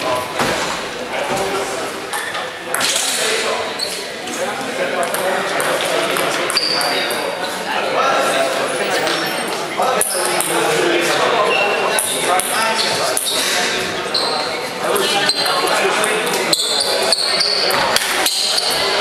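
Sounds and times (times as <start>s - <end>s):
echoing chatter of people: 0.0s - 19.0s.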